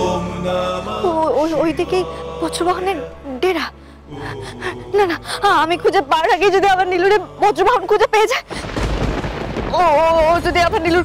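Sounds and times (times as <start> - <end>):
low steady drone: 0.0 - 7.9
dramatic background music: 0.0 - 11.0.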